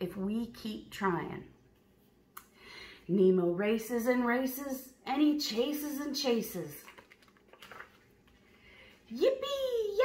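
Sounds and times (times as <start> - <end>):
paper page turning: 6.8 - 8.6.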